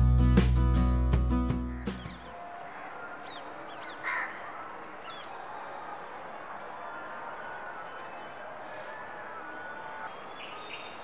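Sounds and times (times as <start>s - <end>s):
faint steady background noise: 2.3s - 11.0s.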